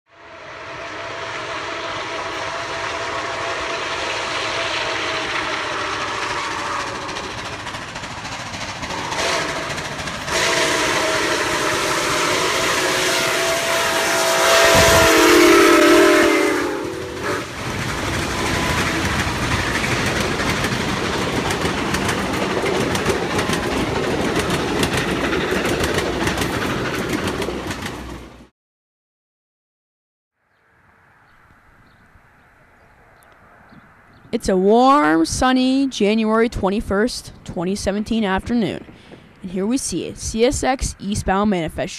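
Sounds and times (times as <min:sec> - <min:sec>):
steam locomotive whistle blasts: 0:00.1 - 0:07.3, 0:08.9 - 0:09.7, 0:10.3 - 0:17.6, 0:18.2 - 0:19.1
train rolling past: 0:00.1 - 0:28.5, 0:31.1 - 0:41.9.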